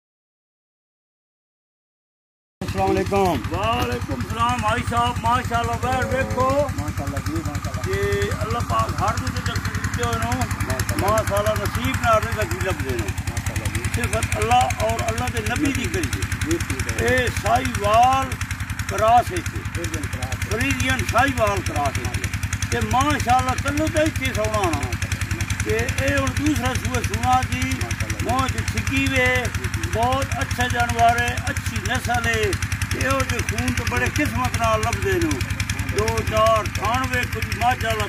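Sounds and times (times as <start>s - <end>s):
fast-pulsing engine hum: 2.6s - 38.0s
men talking: 2.6s - 38.0s.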